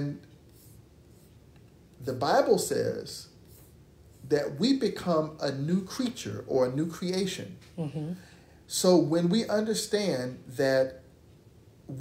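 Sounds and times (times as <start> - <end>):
person speaking: 2.0 - 11.0.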